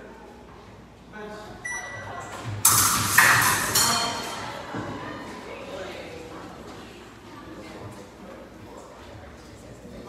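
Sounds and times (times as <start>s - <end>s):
metallic blade hits: 2.6s - 4.4s.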